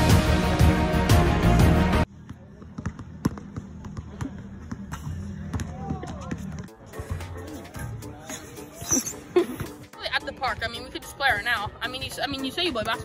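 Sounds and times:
background music: 0:00.0 - 0:02.1, 0:04.9 - 0:13.0
basketball bouncing on hard court: 0:02.2 - 0:06.8.

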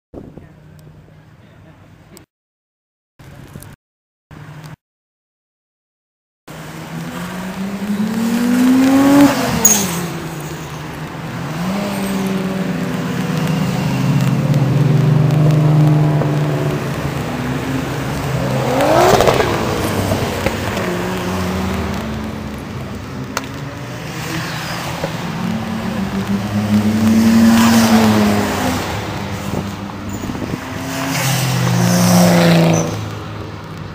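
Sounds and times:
cars approaching: 0:06.5 - 0:33.9.

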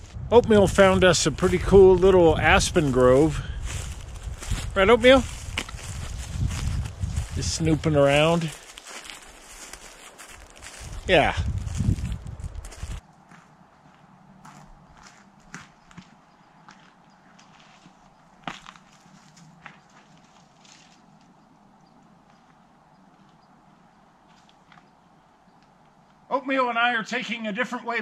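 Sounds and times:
footsteps on rocky ground: 0:00.0 - 0:21.4
loud low rumble: 0:10.8 - 0:13.0.

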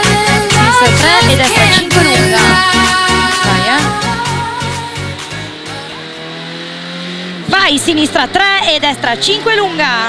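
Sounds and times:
car engine running steadily: 0:00.0 - 0:10.0.

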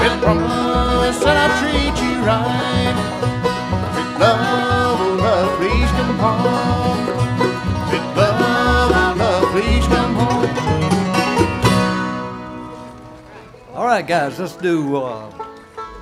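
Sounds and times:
banjo: 0:00.0 - 0:16.0
bluegrass band playing: 0:00.0 - 0:16.0.

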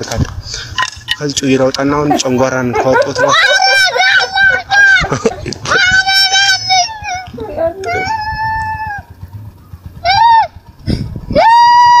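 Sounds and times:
woman wailing: 0:11.3 - 0:12.0.

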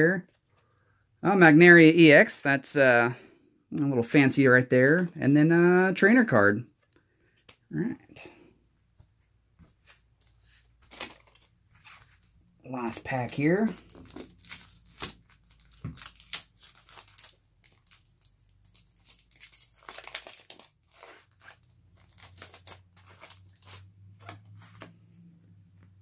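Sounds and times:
cards being handled: 0:09.0 - 0:25.2
foil wrapper crinkling and tearing: 0:10.8 - 0:12.1, 0:12.8 - 0:24.4.

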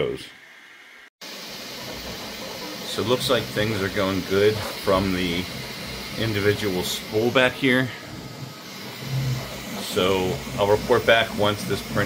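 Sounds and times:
printer fans hissing: 0:01.2 - 0:12.0.

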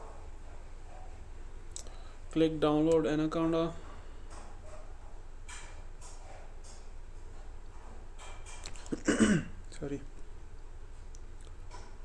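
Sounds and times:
man clearing his throat: 0:08.8 - 0:09.6.

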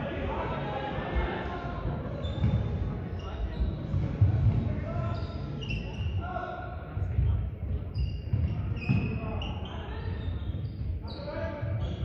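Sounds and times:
shoes squeaking on sports floor: 0:02.1 - 0:06.3, 0:07.7 - 0:12.0.

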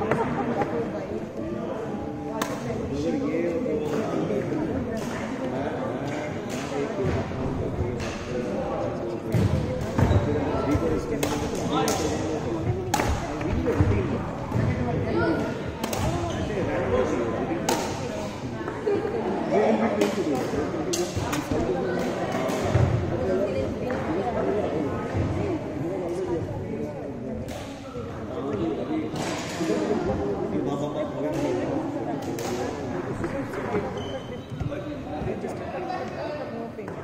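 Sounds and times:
chatter of voices: 0:00.0 - 0:37.0
rackets hitting shuttlecock: 0:10.7 - 0:13.9, 0:15.8 - 0:16.3, 0:17.6 - 0:18.8, 0:32.2 - 0:33.8.

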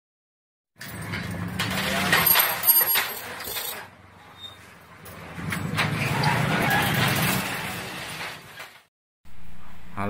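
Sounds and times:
steel gate rattling and scraping: 0:00.8 - 0:08.9.

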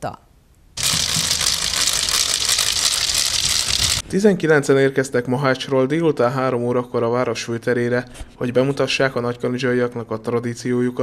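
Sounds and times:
wooden ratchets clattering: 0:00.8 - 0:04.0.

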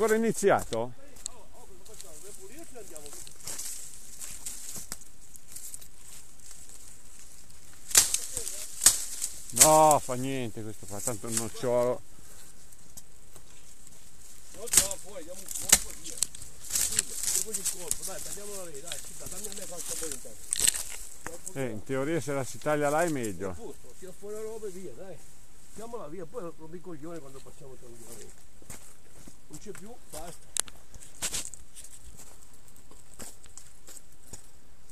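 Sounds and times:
footsteps on gravel: 0:00.0 - 0:11.9, 0:14.3 - 0:21.6, 0:27.4 - 0:34.5
branches rustling and cracking: 0:00.0 - 0:34.6.

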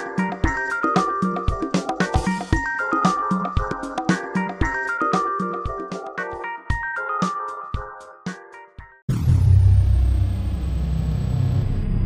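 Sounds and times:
deep rumble: 0:09.1 - 0:12.0
high tone sliding down: 0:09.1 - 0:12.0.

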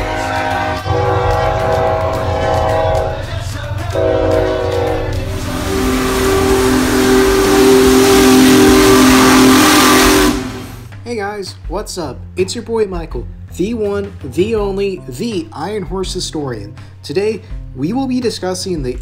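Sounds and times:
locomotive air horn chords: 0:00.0 - 0:10.9
steam whistle blowing: 0:00.0 - 0:10.9
loud hissing steam: 0:04.5 - 0:10.9.

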